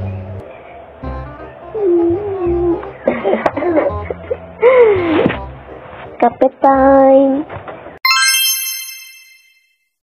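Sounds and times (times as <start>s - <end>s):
high-pitched chime: 8.0s - 9.9s.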